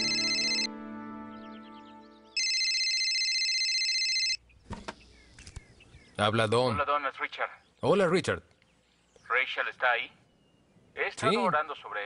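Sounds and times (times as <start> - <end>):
mobile phone ringing: 0.0 - 0.7, 2.4 - 4.4.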